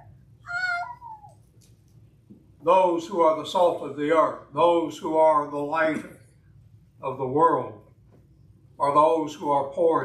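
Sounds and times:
short high-pitched cry: 0:00.4 - 0:01.3.

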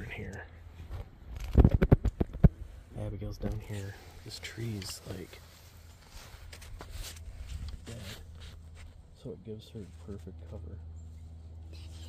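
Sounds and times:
dry leaves and clothing rustling: 0:04.5 - 0:09.1.

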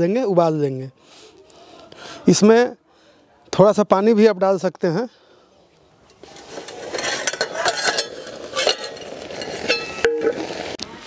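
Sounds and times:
spinach boiling and sizzling: 0:06.0 - 0:11.0
spatula scraping a pan: 0:06.1 - 0:10.8.

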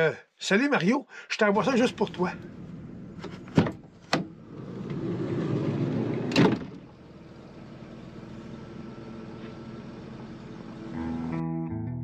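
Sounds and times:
window stopping with clunk: 0:02.0 - 0:07.0
power window motor whirring: 0:02.4 - 0:11.4.

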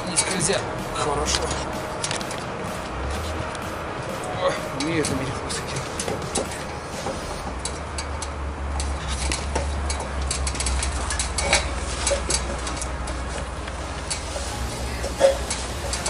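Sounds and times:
steady low rumble: 0:00.0 - 0:08.6, 0:11.8 - 0:16.0
boots and hands on metal ladder: 0:04.8 - 0:14.4.

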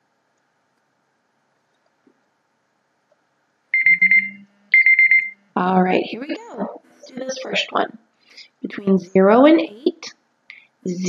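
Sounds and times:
timer alarm high beeps: 0:03.8 - 0:05.5.

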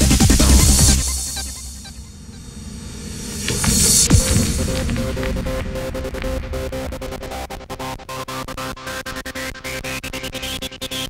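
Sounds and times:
synth bed: 0:00.0 - 0:09.1
rising hiss swell: 0:00.4 - 0:08.4.

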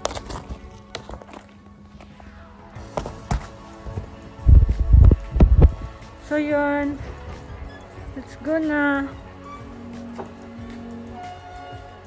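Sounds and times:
faint background music: 0:00.0 - 0:12.0
rumbling thumps on microphone: 0:03.0 - 0:06.0.

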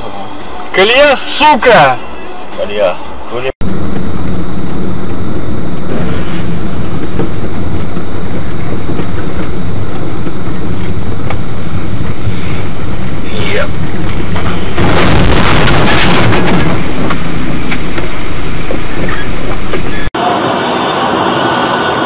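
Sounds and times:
vehicle running drone: 0:01.4 - 0:22.0.

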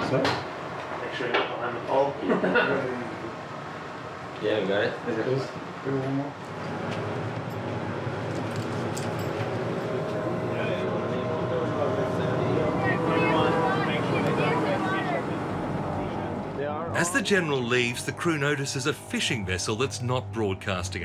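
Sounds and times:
ship machinery drone: 0:01.6 - 0:21.0
faint voices: 0:10.2 - 0:21.0.

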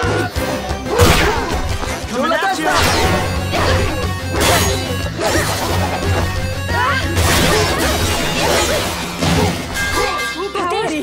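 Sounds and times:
action music: 0:00.0 - 0:11.0.

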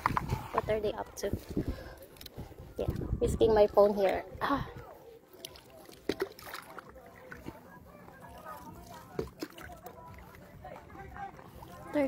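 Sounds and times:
water lapping against paddleboard: 0:00.0 - 0:12.0.

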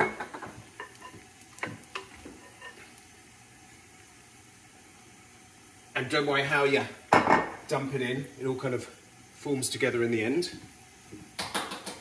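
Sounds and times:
batter sizzling in frying pans: 0:00.0 - 0:12.0.

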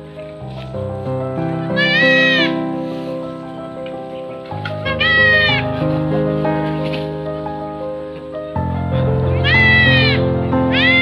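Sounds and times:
background music with held notes: 0:00.0 - 0:11.0
goat kid bleating: 0:01.8 - 0:02.6, 0:04.8 - 0:05.7, 0:09.4 - 0:11.0.

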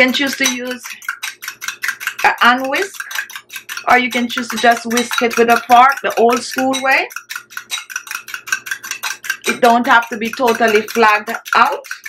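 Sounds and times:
fork whisking in a glass bowl: 0:00.0 - 0:12.0.

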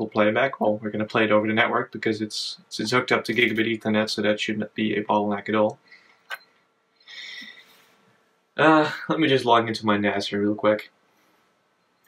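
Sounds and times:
faint high-pitched hiss: 0:00.0 - 0:12.0.

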